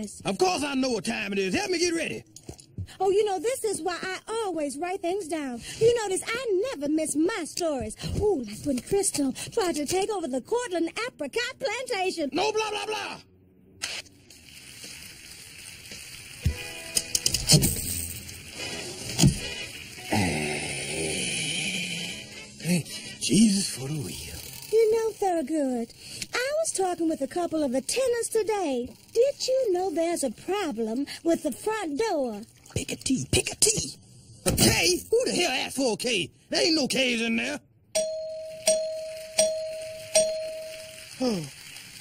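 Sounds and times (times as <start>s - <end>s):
ringing bell chime: 38.0s - 41.2s.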